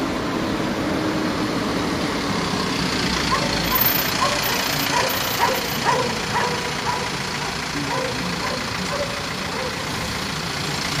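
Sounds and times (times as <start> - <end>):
vehicle engines running and idling: 0.0 - 11.0.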